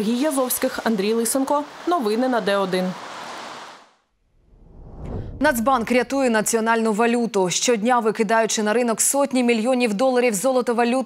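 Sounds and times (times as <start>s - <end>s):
outdoor ambient hiss: 0.0s - 4.5s
low rumble: 4.2s - 6.3s.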